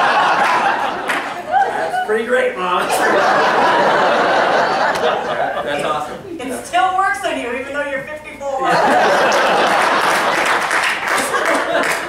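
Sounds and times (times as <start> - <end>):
audience applauding: 0.0 - 1.9, 9.0 - 12.0.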